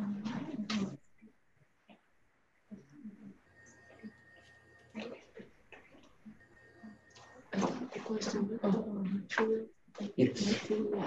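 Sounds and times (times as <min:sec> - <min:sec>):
voices over a video call: 0:00.0 - 0:01.0, 0:02.7 - 0:11.0.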